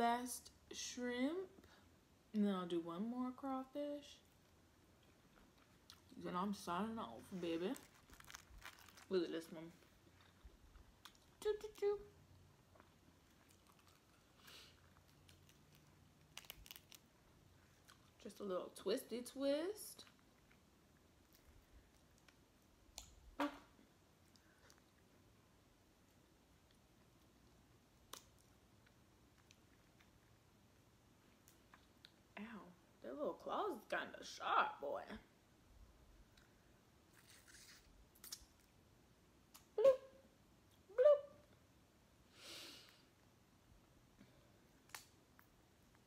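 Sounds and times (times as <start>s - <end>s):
crawfish shell cracking: 7.8s - 9.2s, 12.8s - 17.1s
shell crackling by hand: 15.0s - 17.1s.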